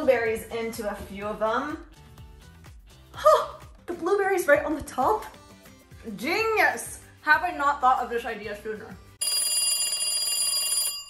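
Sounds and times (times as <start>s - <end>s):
telephone ringing: 9.2s - 11.0s.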